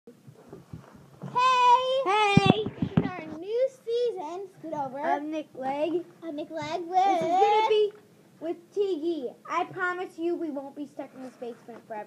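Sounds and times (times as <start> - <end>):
faint rustling: 0.2 - 12.0.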